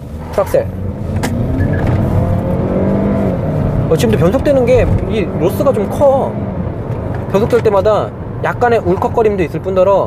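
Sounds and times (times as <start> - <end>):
car engine revving under full throttle: 0.0 - 9.2.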